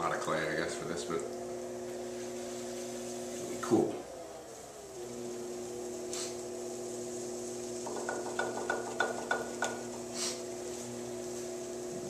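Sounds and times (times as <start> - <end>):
potter's wheel humming: 0.0 - 12.0.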